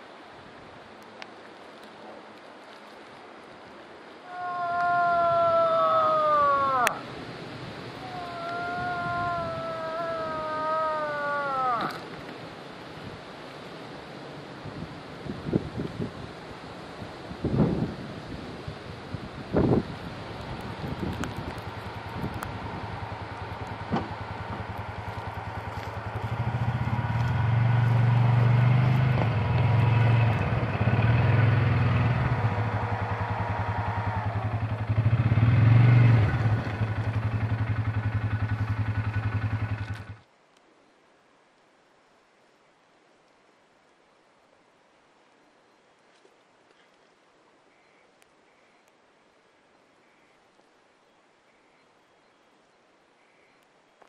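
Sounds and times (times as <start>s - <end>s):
moose call through cupped hands: 4.2s - 7.1s, 8.0s - 12.2s
vehicle engine idling and revving: 20.3s - 40.3s.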